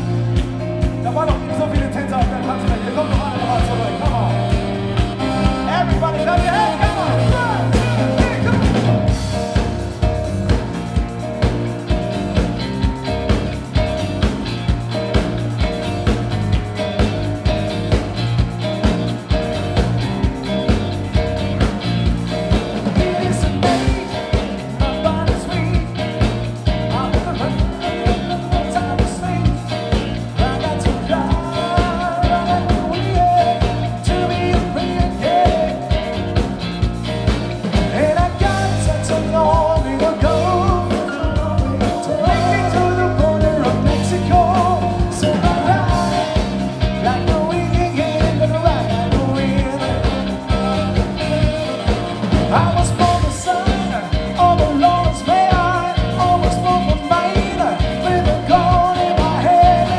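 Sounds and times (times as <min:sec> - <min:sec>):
live band playing: 0:00.0 - 0:59.9
sliding melodic line: 0:00.0 - 0:59.9
steady drum beat: 0:00.0 - 0:59.9
man singing into microphone: 0:01.0 - 0:04.6, 0:05.2 - 0:09.0, 0:22.8 - 0:36.2, 0:37.9 - 0:59.9.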